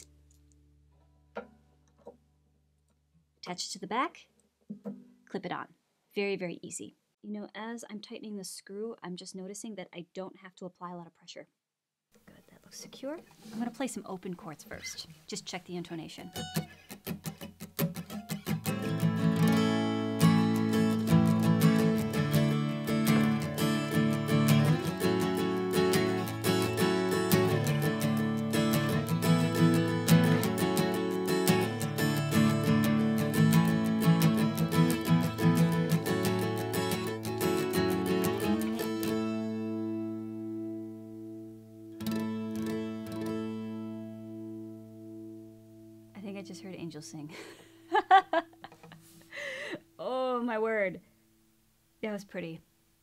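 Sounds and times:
acoustic guitar strumming chords: 16.3s - 46.5s.

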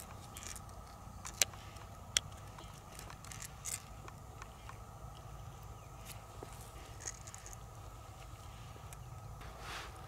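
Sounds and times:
shell scraping: 0.0s - 4.8s, 6.0s - 7.7s.

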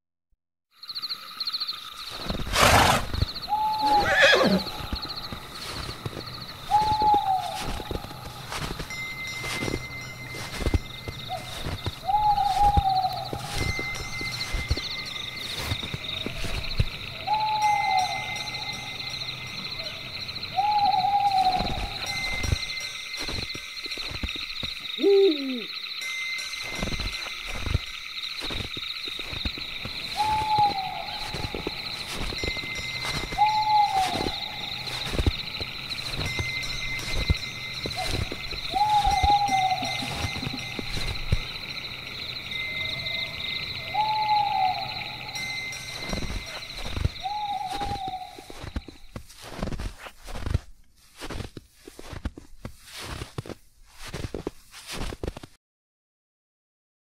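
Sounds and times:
insects trilling: 0.7s - 55.4s
owl hooting: 2.6s - 8.6s, 11.2s - 14.0s, 14.7s - 19.0s, 19.7s - 22.7s, 24.8s - 25.9s, 30.0s - 41.8s, 42.6s - 49.0s.

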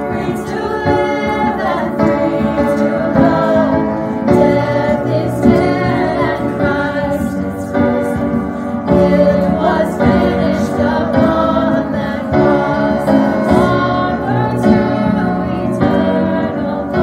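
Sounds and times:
piano: 0.0s - 17.0s
women singing a worship song: 0.0s - 17.0s.

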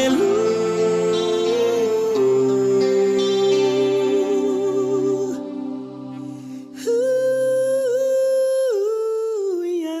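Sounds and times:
person humming long notes: 0.0s - 7.9s
backing chord: 0.0s - 8.0s.

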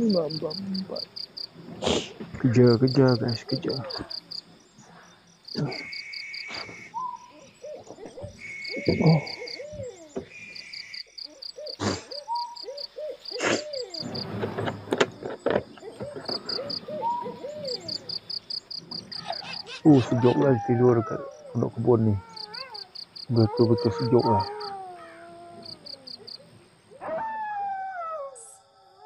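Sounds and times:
buzzing insect calls: 0.0s - 27.0s
high insect trill: 0.0s - 27.0s
low animal calls: 0.0s - 29.0s.

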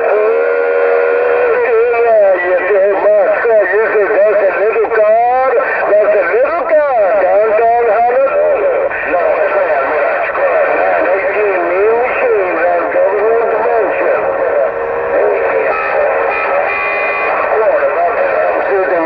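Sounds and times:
radio voices with warbling pitch: 0.0s - 19.0s
steady radio whistle: 0.0s - 19.0s.

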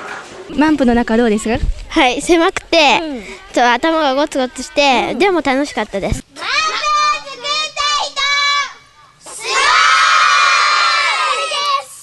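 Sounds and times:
children shouting a phrase: 6.3s - 12.0s
children cheering: 6.5s - 12.0s.

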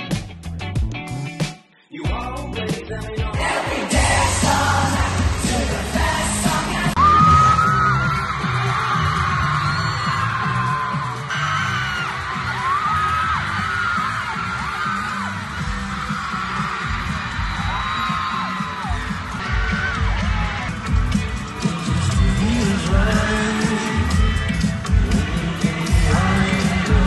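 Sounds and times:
band bass and drums: 0.0s - 27.0s
person singing: 1.8s - 7.7s, 21.5s - 27.0s.

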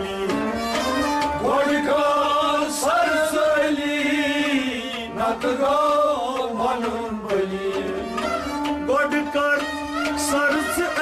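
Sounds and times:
harmonium drone: 0.0s - 11.0s
men singing in chorus: 1.3s - 9.6s.

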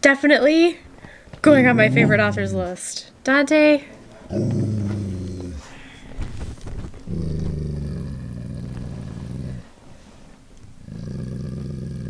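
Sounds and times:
dog growling: 1.4s - 2.8s, 4.2s - 9.8s, 10.8s - 12.0s.

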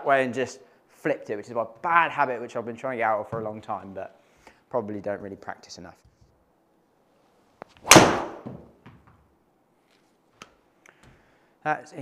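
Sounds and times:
golf driver striking ball: 7.8s - 8.4s.

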